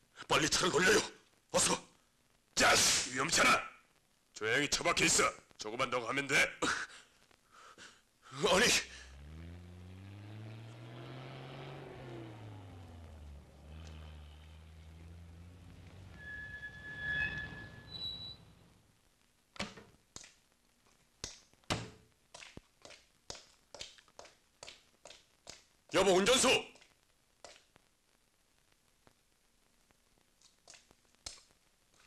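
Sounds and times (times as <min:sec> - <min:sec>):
car engine revving: 0:08.6 - 0:17.8
brief high squeal: 0:16.1 - 0:18.5.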